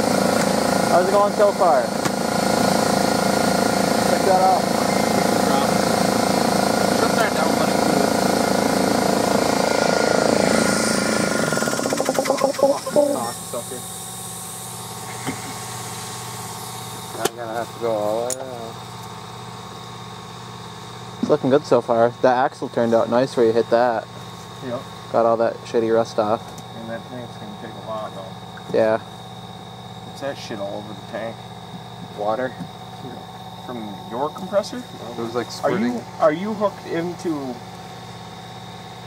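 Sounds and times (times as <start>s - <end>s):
air compressor running: 0.0s - 39.0s.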